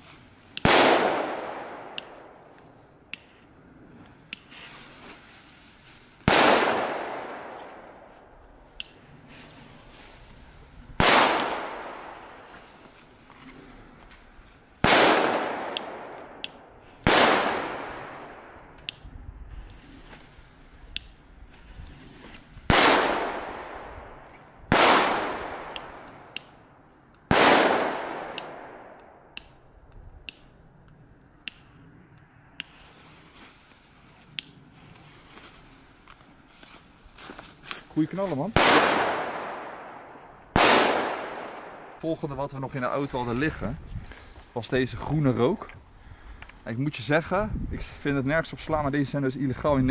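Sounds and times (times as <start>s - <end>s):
firecracker bangs echoing: 14.8s - 16.4s, 38.5s - 42.0s.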